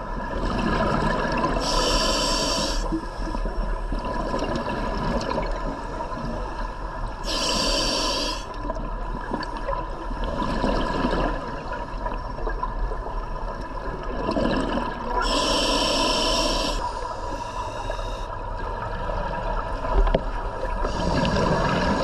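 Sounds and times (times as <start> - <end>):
steady underwater hiss: 0.1 - 3.9, 5.6 - 12.1, 14.8 - 22.0
diver breathing through regulator: 1.6 - 3.0, 7.2 - 8.6, 15.2 - 18.4, 20.8 - 22.0
bubbling of exhaled air: 13.7 - 16.8, 20.8 - 22.0.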